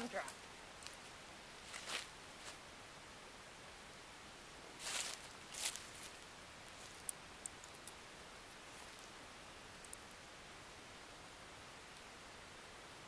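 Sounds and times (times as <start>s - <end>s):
footsteps in dry leaves: 1.6s - 2.6s, 4.8s - 7.0s
faint clicks: 6.9s - 8.0s, 9.8s - 10.2s.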